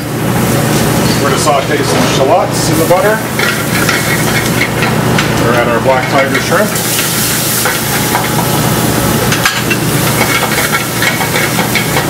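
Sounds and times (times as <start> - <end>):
shallots sizzling in pan: 0.1 - 12.0.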